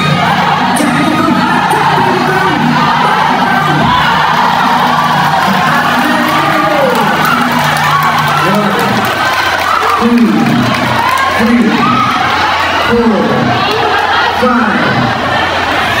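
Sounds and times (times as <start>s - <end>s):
music: 0.0s - 9.9s
crowd cheering and shouting: 0.0s - 16.0s.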